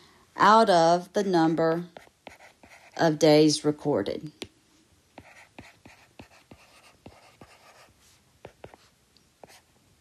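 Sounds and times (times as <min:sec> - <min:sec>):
stylus writing on tablet screen: 0:00.4 - 0:04.5, 0:05.2 - 0:09.7.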